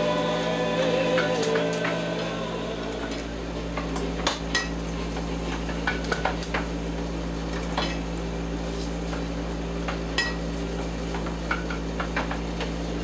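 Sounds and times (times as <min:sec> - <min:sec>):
steady machine hum: 0:00.0 - 0:13.0.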